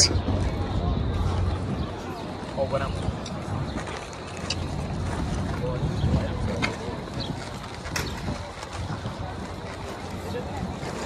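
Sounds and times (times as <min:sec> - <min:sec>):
faint voices of people: 0:00.0 - 0:11.0
wind rumble on microphone: 0:00.0 - 0:11.0.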